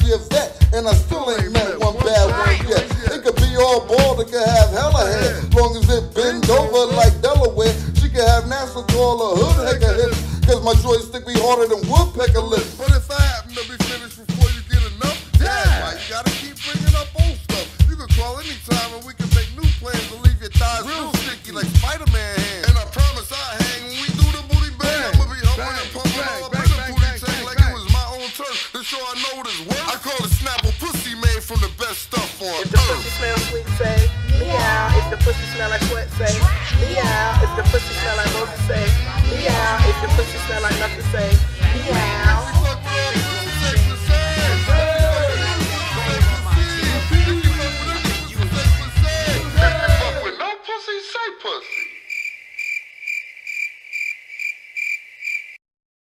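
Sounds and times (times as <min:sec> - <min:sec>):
hip hop song with rapping: 0:00.0 - 0:51.8
cricket chirping: 0:51.7 - 0:55.6.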